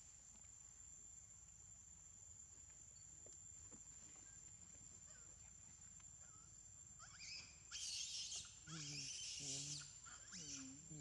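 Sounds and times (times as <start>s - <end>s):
monkey squeaks and squeal: 7.0s - 10.8s.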